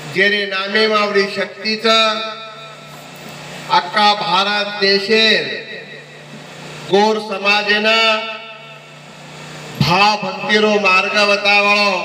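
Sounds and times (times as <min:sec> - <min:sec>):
man speaking into microphone: 0:00.1 - 0:02.7, 0:03.7 - 0:06.0, 0:06.9 - 0:08.7, 0:09.8 - 0:12.0.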